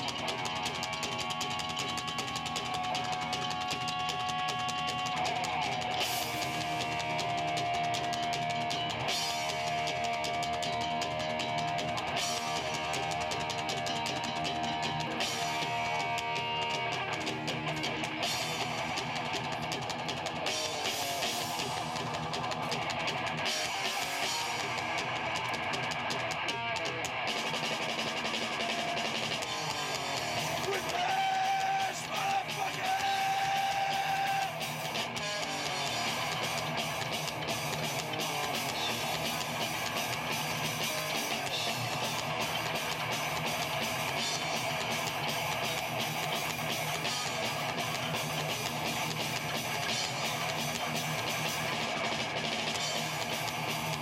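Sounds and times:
live rock band: 0.0s - 54.0s.

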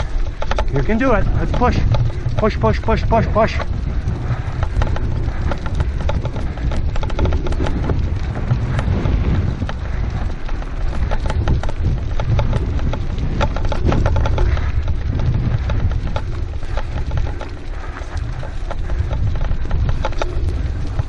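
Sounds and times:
crunching on dirt road: 0.0s - 21.0s
wind buffeting microphone: 0.0s - 21.0s.

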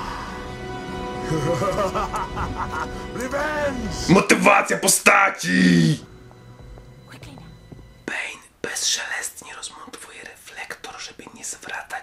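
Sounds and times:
man whispering: 8.0s - 12.0s.

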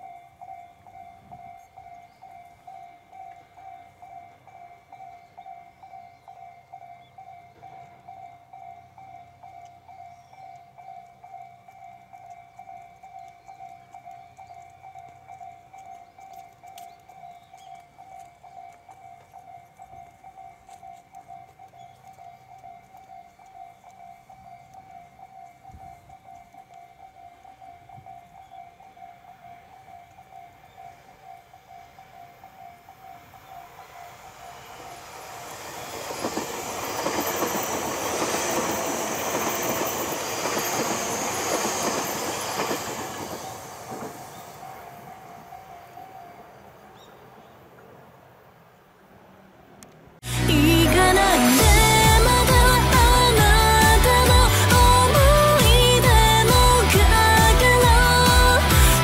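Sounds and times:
level-crossing bell dinging: 0.0s - 47.1s
electric train passing: 0.0s - 59.0s.

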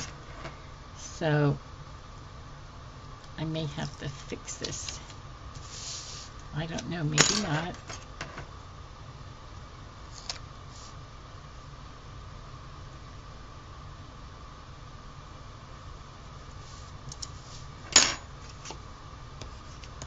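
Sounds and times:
faint background hum: 0.0s - 20.0s.

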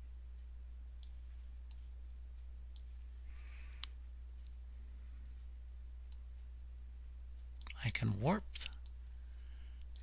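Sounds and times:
low electrical hum: 0.0s - 10.0s
faint click: 3.7s - 4.6s.

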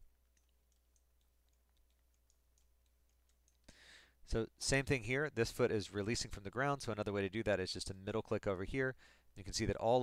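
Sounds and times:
mouse and keyboard clicks: 0.3s - 3.7s.

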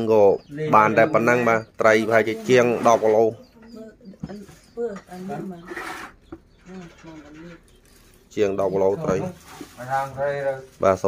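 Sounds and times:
man's voice: 0.0s - 3.4s, 8.3s - 11.0s
quieter talking in background: 0.0s - 11.0s.

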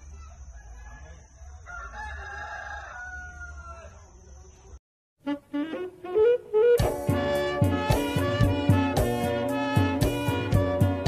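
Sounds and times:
rooster crowing: 0.0s - 4.2s.

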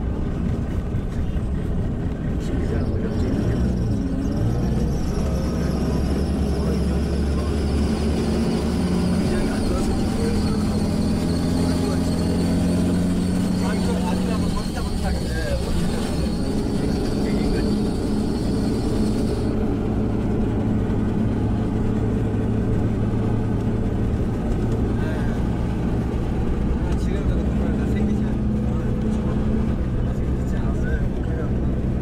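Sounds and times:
bus engine drone: 0.0s - 32.0s
road noise: 0.0s - 32.0s.

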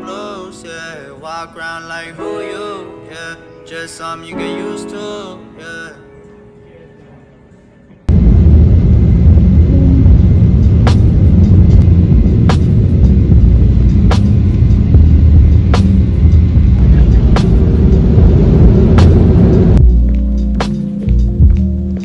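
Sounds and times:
airliner cabin rumble: 8.1s - 19.8s.

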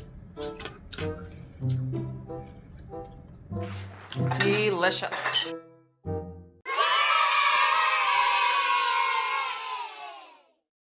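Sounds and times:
crowd cheering and shouting: 6.7s - 10.5s.

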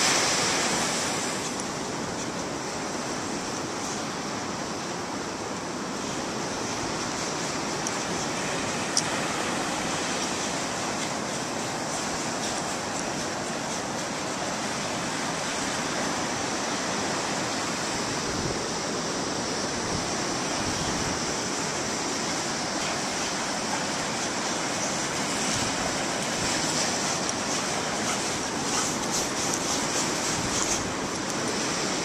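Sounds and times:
ocean surf: 0.0s - 32.0s
wind noise on microphone: 6.4s - 32.0s.

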